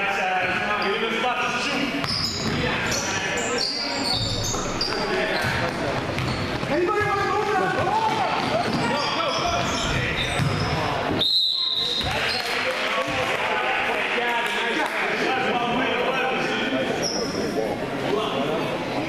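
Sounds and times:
sneaker squeaks: 2.0 - 12.6, 17.0 - 17.6
basketball dribbling: 4.1 - 10.8.

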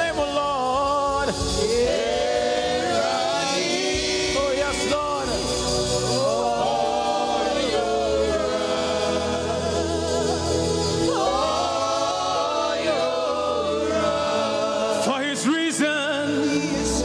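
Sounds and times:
gospel group singing: 0.0 - 17.0
instrumental backing with bass: 0.0 - 17.0.

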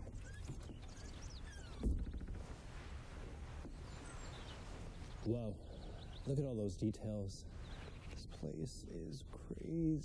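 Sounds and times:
faint bird chirps: 0.0 - 8.6.

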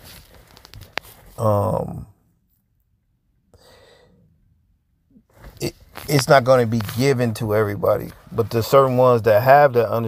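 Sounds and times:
man speaking: 1.4 - 2.1, 5.6 - 10.0
throaty vocal noise: 1.4 - 2.2
man breathing: 3.5 - 4.3.

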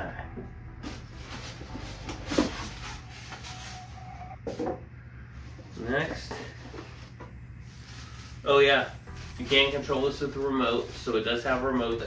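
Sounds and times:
cardboard packaging rustling: 0.8 - 4.2, 6.8 - 11.1.

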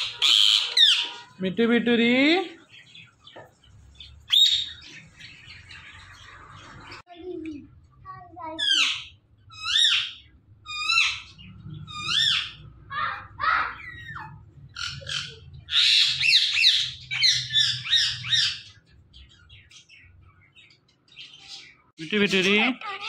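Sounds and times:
parakeet chirping calls: 0.0 - 1.4, 2.5 - 7.1, 8.4 - 23.0.

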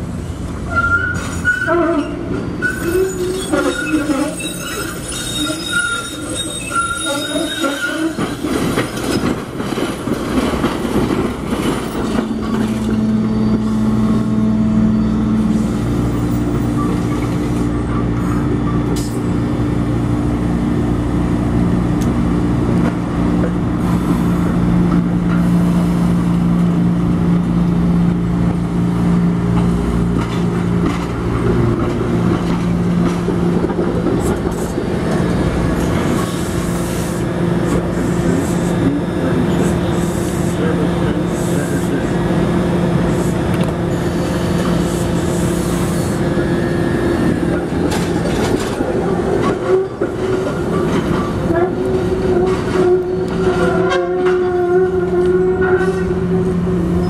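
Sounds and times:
wheels rumbling on rail: 0.0 - 57.0
trolley wheels squealing: 0.7 - 9.2.

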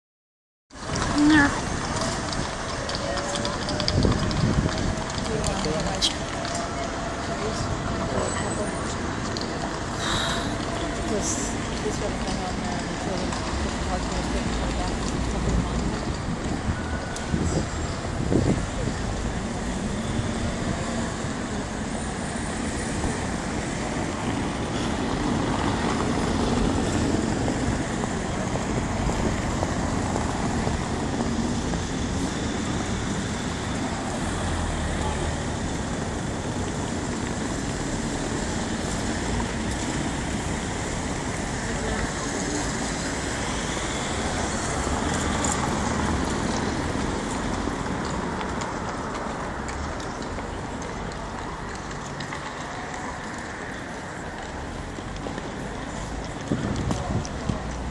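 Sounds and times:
road traffic noise: 0.7 - 57.9.

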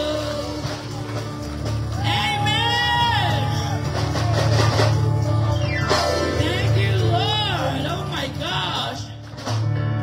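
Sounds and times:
low bass line: 0.0 - 10.0
worship band playing: 0.0 - 10.0.

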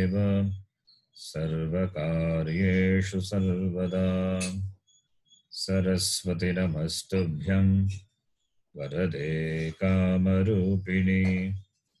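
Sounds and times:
man chanting prayer: 0.0 - 0.6, 1.2 - 4.8, 5.6 - 8.0, 8.8 - 11.6.

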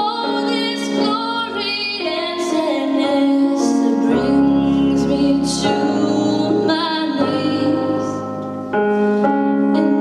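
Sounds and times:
woman singing into microphone: 0.0 - 8.5, 9.5 - 10.0
musical accompaniment: 0.0 - 10.0.

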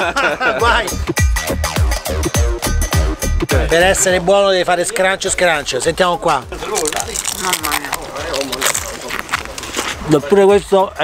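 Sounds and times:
crisp flatbread crunching: 6.6 - 10.2.

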